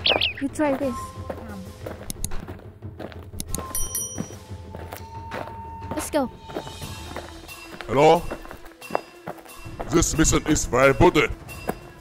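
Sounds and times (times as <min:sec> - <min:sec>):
background music with held notes: 0:00.0 - 0:12.0
high chiming tone: 0:03.6 - 0:11.8.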